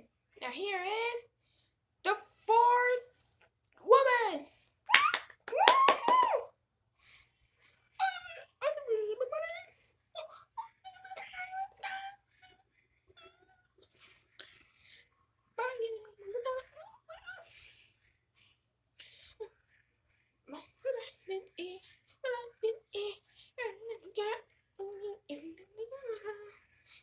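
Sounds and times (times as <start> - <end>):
child clapping hands: 4.9 - 6.4.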